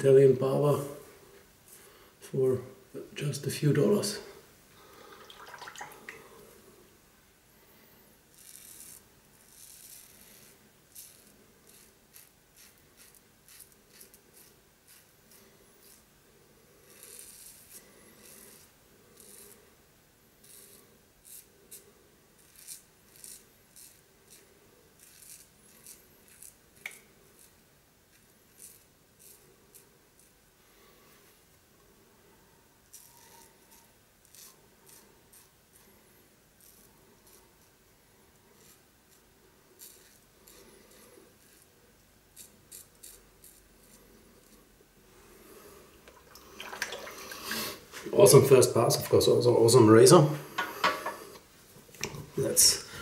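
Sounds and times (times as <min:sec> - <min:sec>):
razor scraping stubble: 0:08.3 - 0:19.8, 0:20.4 - 0:30.4, 0:32.8 - 0:45.6.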